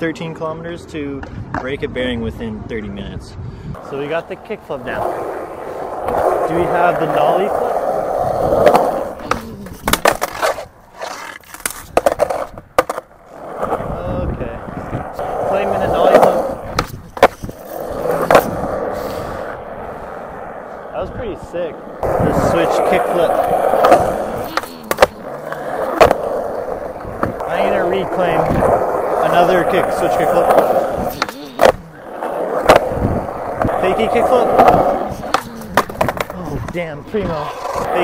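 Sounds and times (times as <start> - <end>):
skateboard wheels rolling on concrete: 0.0 - 38.0
skateboard clacks: 3.8 - 14.0, 14.6 - 18.9, 21.9 - 38.0.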